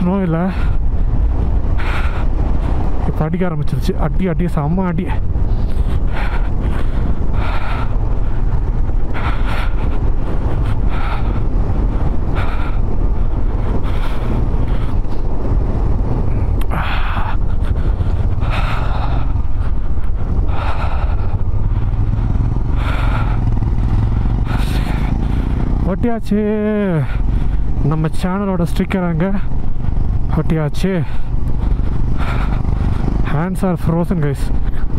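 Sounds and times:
motorcycle engine running: 0.0 - 34.9
road and wind rush: 0.0 - 34.9.

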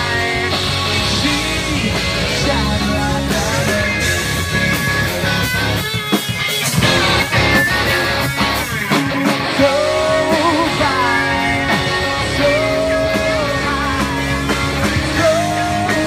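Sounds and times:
lead guitar bending notes: 0.0 - 16.0
live rock band playing: 0.0 - 16.0.

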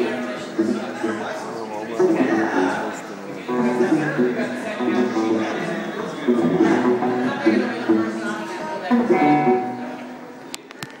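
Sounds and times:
acoustic guitar notes: 2.0 - 10.4.

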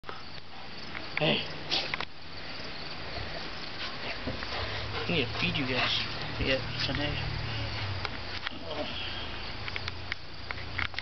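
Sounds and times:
high insect trill: 0.1 - 11.0.

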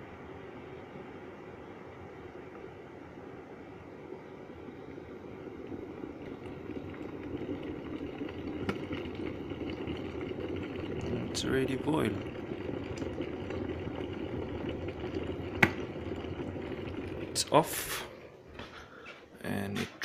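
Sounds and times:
electric kettle boiling: 0.0 - 19.7.

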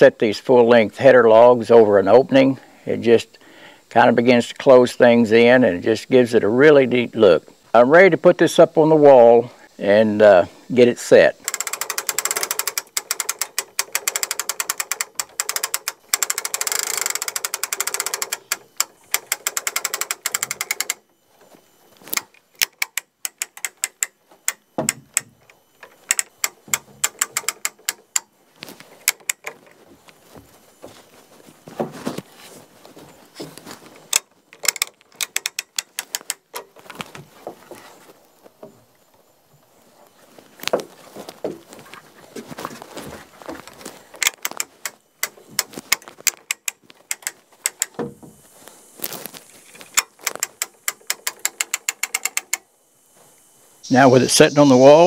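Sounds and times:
hand-cranked winch ratcheting: 11.3 - 21.0, 22.1 - 28.3, 29.0 - 29.8, 34.0 - 37.0, 43.6 - 48.1, 49.6 - 52.7.

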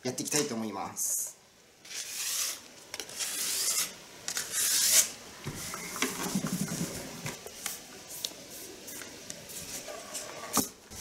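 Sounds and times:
sandpaper rubbing on wood: 1.9 - 3.9.

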